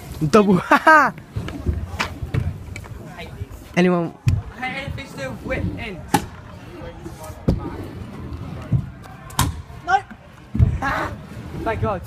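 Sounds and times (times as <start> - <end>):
scooter wheels rolling on ramp: 0.0 - 12.0.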